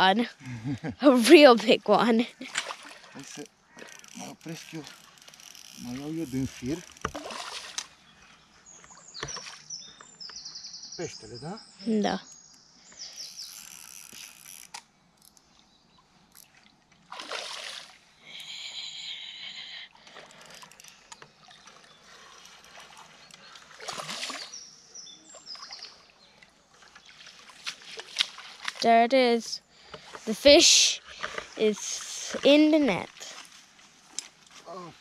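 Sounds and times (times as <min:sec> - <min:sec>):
fish splashing at water surface: 0:07.1 - 0:07.9, 0:16.4 - 0:18.1, 0:20.0 - 0:24.6.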